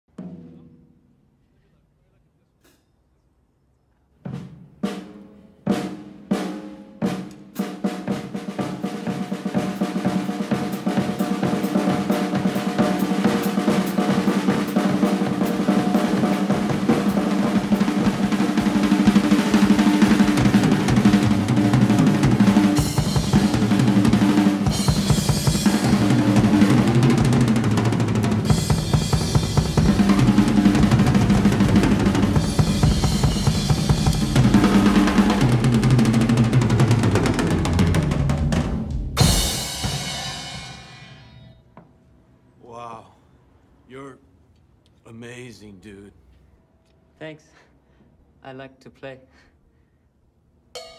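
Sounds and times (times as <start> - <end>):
drum rolls on toms and bass drum: 4.2 - 41.9
cymbal crashes: 39.2 - 41.6.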